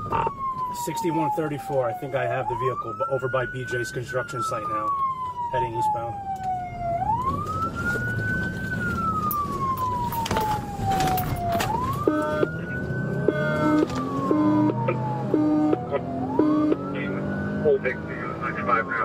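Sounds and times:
engine and road noise: 0:00.0 - 0:19.0
police siren wailing: 0:00.0 - 0:19.0.

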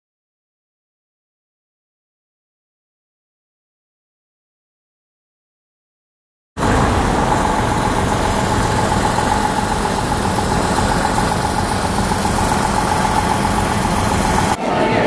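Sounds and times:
vehicle engine idling: 0:06.6 - 0:14.6.

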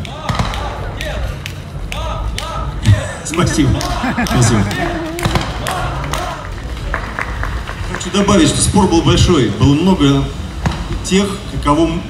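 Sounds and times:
indistinct voices talking: 0:02.8 - 0:06.5.

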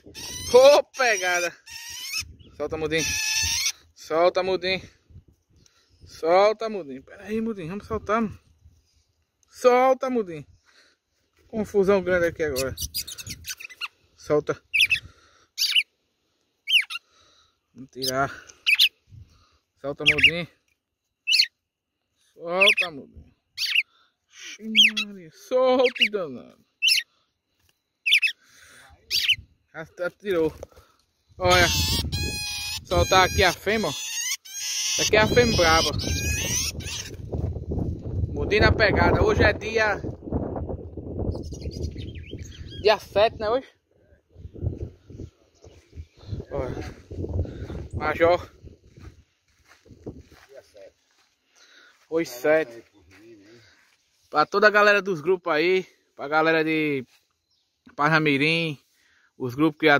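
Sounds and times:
bird calls: 0:12.5 - 0:16.0, 0:16.6 - 0:17.4, 0:18.0 - 0:19.0, 0:20.0 - 0:20.4, 0:21.0 - 0:29.5, 0:30.6 - 0:37.4, 0:41.2 - 0:43.0
bird chirps and whistles: 0:28.0 - 0:28.4, 0:41.3 - 0:42.9
microphone handling rumble: 0:44.3 - 0:49.2.

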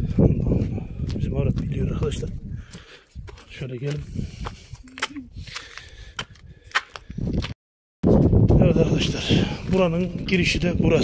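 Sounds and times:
footsteps on gritty concrete: 0:00.0 - 0:10.6.

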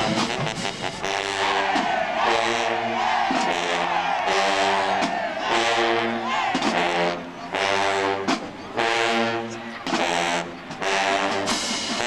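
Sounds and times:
brass band holding chords: 0:00.0 - 0:12.0.

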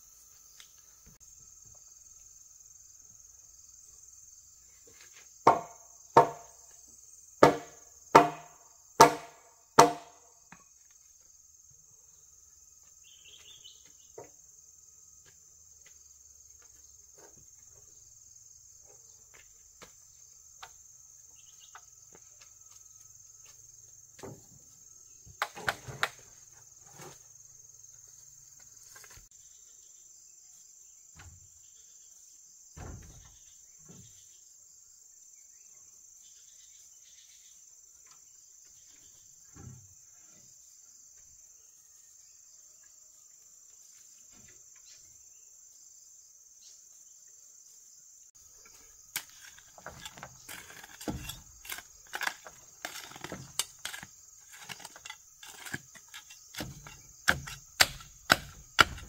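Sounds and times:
insects chirring: 0:00.0 - 0:59.0
wooden knocks: 0:05.5 - 0:06.5.

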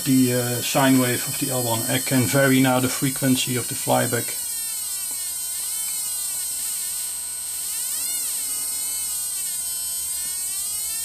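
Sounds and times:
spark gap buzzing with hiss: 0:00.0 - 0:11.0.

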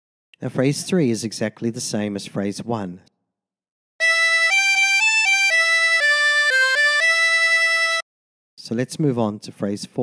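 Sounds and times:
harmonica playing single notes: 0:04.0 - 0:08.0.

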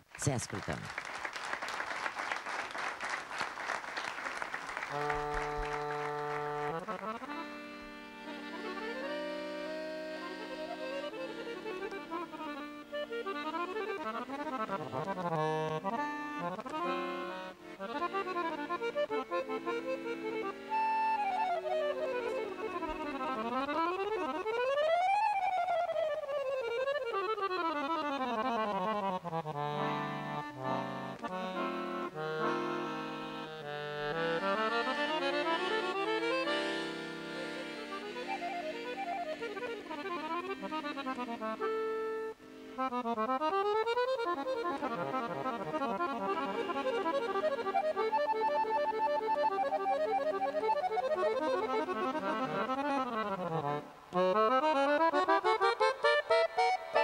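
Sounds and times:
accordion playing folk music: 0:02.3 - 0:57.0.

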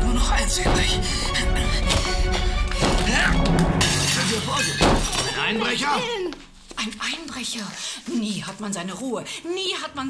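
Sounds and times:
glass shattering: 0:03.8 - 0:05.8.

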